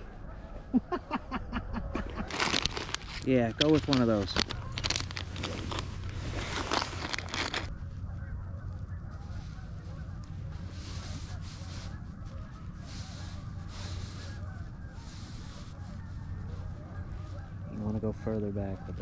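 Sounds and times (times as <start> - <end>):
plastic package crinkling: 2.2 - 7.7.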